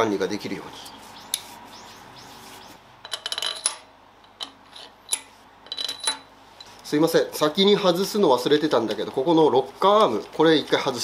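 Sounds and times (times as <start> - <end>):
metal bolts clinking: 3.0 - 6.7.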